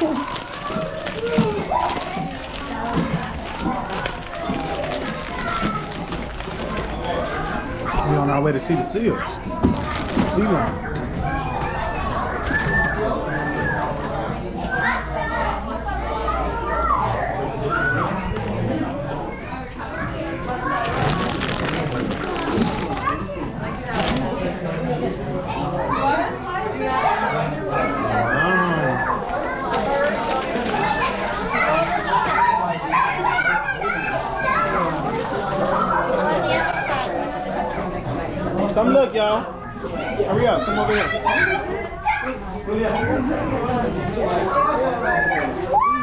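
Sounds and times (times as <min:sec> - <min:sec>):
children calling and chattering: 0:00.0 - 0:46.0.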